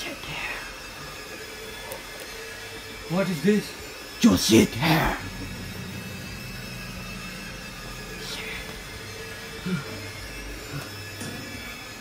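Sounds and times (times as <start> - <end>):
steady background hum: 0.0 - 12.0.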